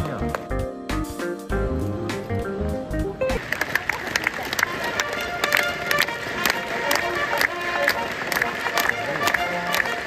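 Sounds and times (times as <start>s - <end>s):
crowd clapping along: 3.4s - 10.0s
brass fanfare with trumpets: 4.5s - 10.0s.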